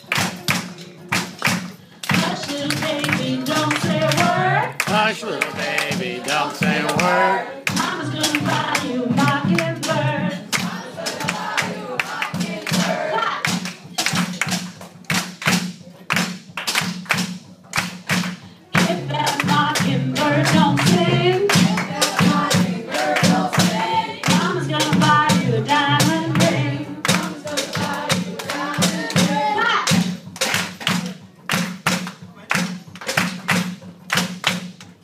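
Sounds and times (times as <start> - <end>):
drum beats: 0.0 - 35.0.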